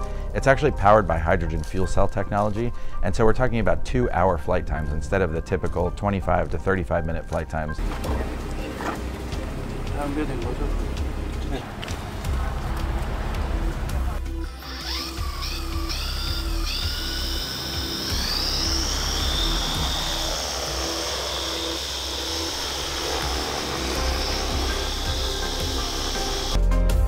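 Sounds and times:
background music: 0:00.0 - 0:27.0
drone rotors whining: 0:07.8 - 0:26.6
low rush: 0:18.1 - 0:26.6.

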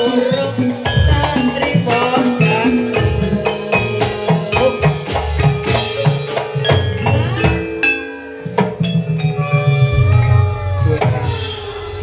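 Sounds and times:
struck metallophones ringing: 0:00.0 - 0:12.0
low drum beats: 0:08.5 - 0:12.0.

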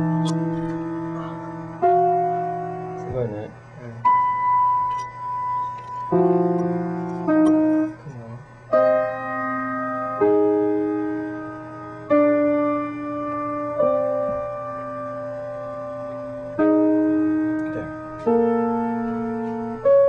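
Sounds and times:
slow solo piano: 0:00.0 - 0:20.0.

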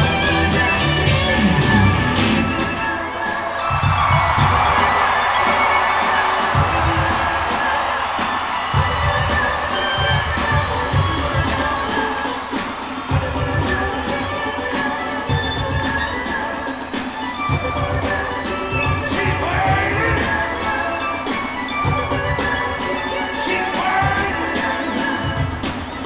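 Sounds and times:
bass guitar runs: 0:00.0 - 0:02.7
crowd cheering: 0:00.0 - 0:26.0
live rock band playing: 0:00.0 - 0:26.0.

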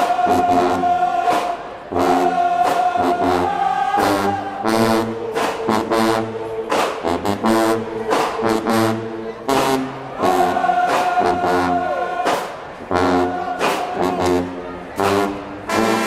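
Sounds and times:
brass sustaining long notes: 0:01.9 - 0:12.2, 0:12.9 - 0:16.0.

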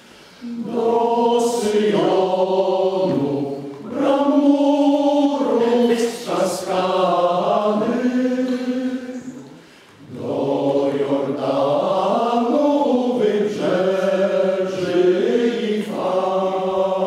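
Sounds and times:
male choir singing: 0:00.4 - 0:17.0.

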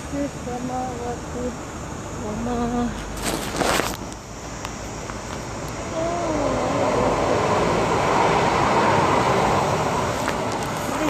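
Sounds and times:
vehicle passing by: 0:05.8 - 0:11.0.

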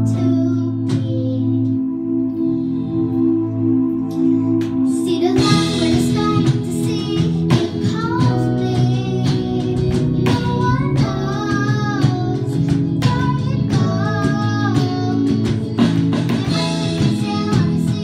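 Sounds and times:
girl singing into microphone: 0:00.0 - 0:02.7, 0:04.1 - 0:18.0
live band with electronic keyboard: 0:00.0 - 0:18.0.

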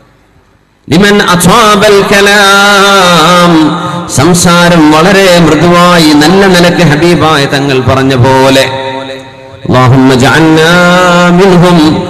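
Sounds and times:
man chanting through a microphone: 0:00.9 - 0:12.0.

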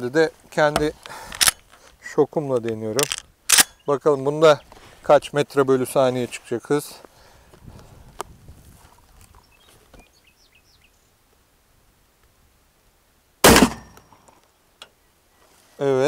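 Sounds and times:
shotgun shot: 0:13.4 - 0:14.1.

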